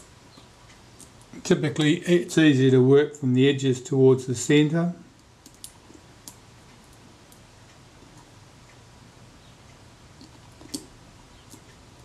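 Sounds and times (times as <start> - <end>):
old adhesive cracking clicks: 5.4 - 6.4.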